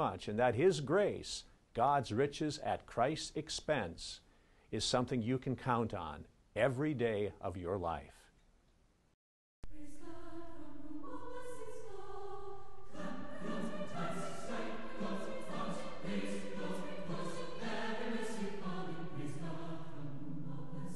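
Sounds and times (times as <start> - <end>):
choir singing sustained notes: 9.6 - 20.9.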